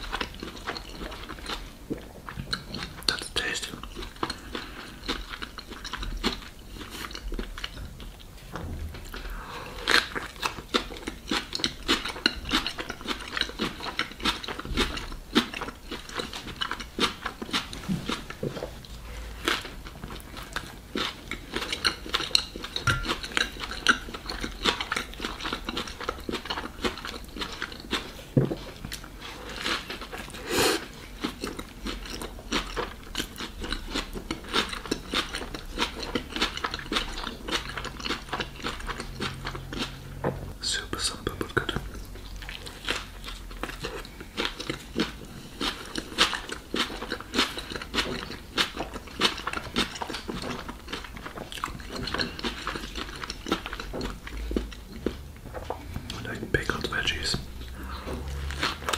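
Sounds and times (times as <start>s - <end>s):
wet chewing with crunches: 0.0s - 58.9s.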